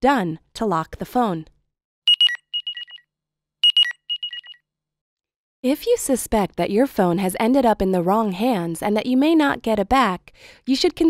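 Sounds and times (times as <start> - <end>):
phone electronic ringtone: 2.1 - 3.0, 3.6 - 4.6.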